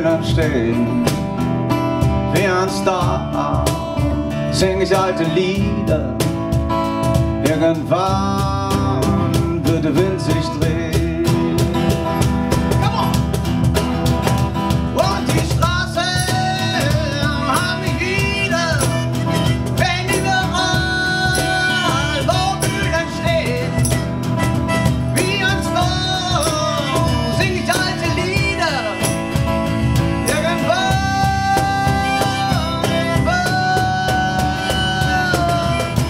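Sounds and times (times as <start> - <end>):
bongos: 0.0 - 36.0
strummed acoustic guitar: 0.0 - 36.0
harmonica melody: 8.0 - 36.0.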